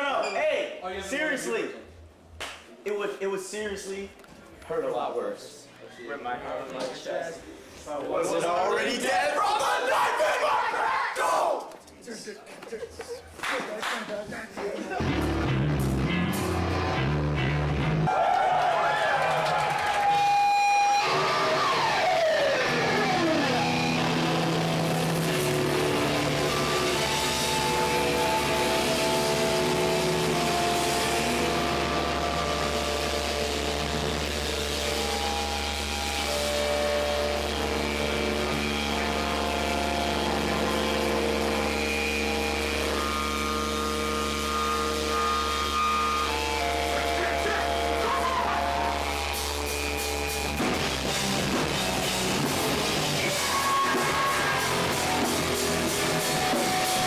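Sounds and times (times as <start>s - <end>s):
bass guitar: 15.0s - 18.1s, 19.8s - 57.0s
distorted electric guitars: 15.0s - 18.1s, 19.3s - 57.0s
guitar sliding down in pitch: 15.0s - 18.1s, 19.7s - 57.0s.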